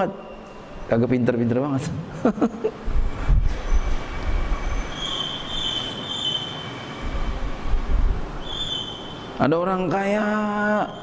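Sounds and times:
high-pitched squeal: 0:03.0 - 0:07.8.

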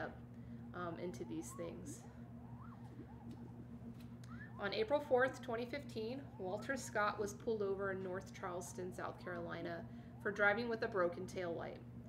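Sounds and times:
faint rising and falling tones: 0:00.0 - 0:11.3
electrical hum: 0:00.0 - 0:12.0.

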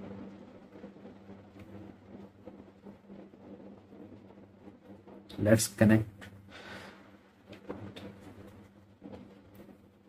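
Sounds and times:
soft breath: 0:06.4 - 0:07.4.

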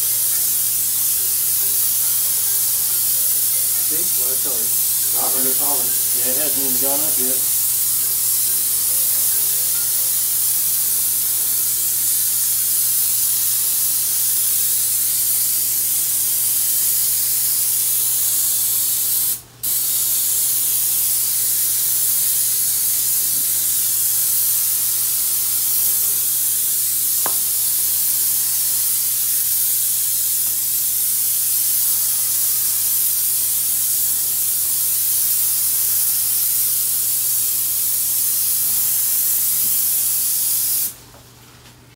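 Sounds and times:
paint spray gun hissing: 0:00.0 - 0:41.0.

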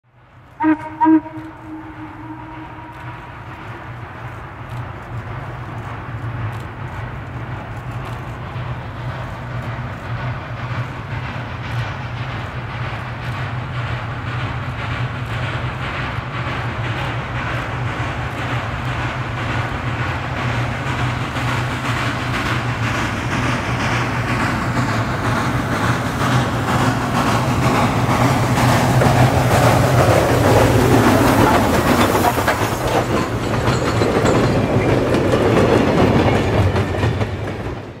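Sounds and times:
train wheels clickety-clack: 0:00.1 - 0:38.0
steam locomotive exhaust chuffs: 0:00.2 - 0:38.0.

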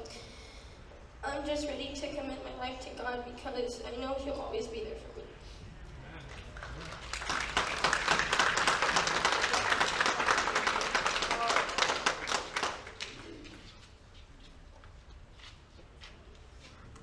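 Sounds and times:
crowd clapping: 0:06.2 - 0:13.6.

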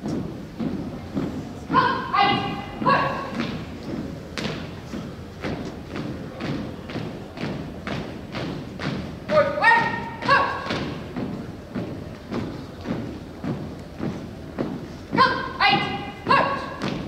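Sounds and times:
marching on wooden floor: 0:00.0 - 0:17.0
person shouting commands: 0:01.7 - 0:03.4, 0:09.3 - 0:10.8, 0:15.2 - 0:16.8.

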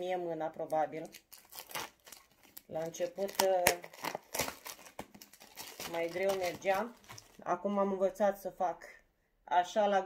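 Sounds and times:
plastic shrink wrap crinkling: 0:00.5 - 0:07.5.

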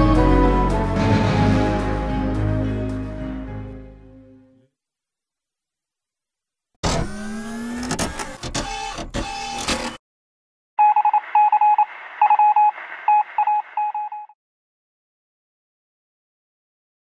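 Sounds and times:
thin electronic beeps: 0:10.8 - 0:14.3.

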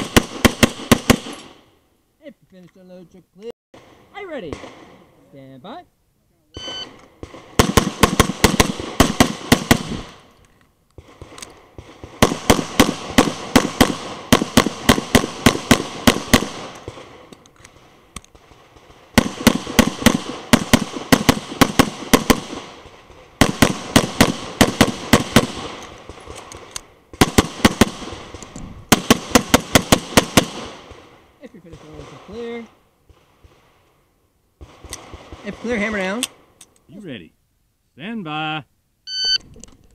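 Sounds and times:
rapid pistol fire: 0:00.0 - 0:01.6, 0:03.8 - 0:05.0, 0:07.2 - 0:10.3, 0:11.0 - 0:33.7, 0:34.6 - 0:36.2.

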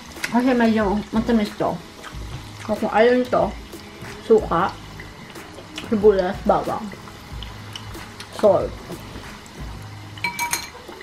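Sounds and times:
fork clinking on metal strainer: 0:10.2 - 0:10.8.

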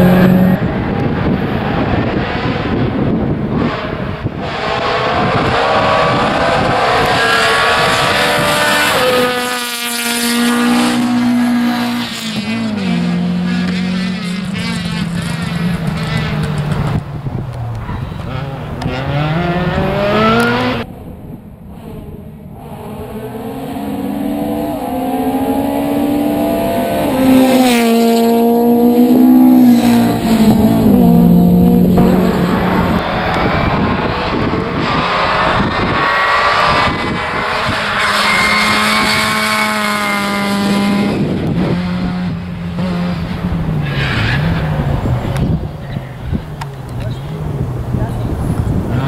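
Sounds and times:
rally car engine revving: 0:00.0 - 0:20.9, 0:21.7 - 0:49.0.

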